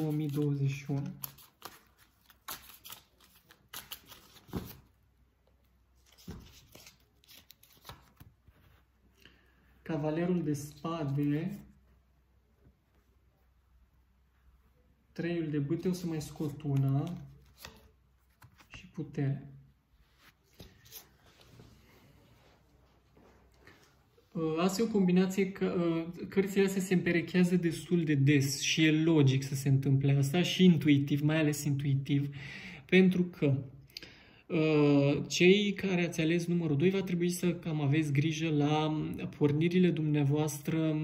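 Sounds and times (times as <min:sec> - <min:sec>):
cards rustling and flicking: 0:00.0 - 0:05.0, 0:06.0 - 0:08.7, 0:15.9 - 0:18.9, 0:20.3 - 0:21.5.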